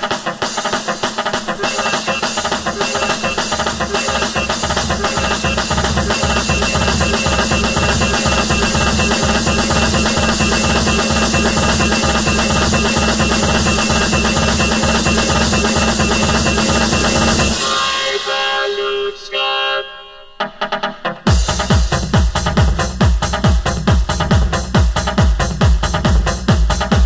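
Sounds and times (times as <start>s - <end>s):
electronic dance music: 0.0s - 27.0s.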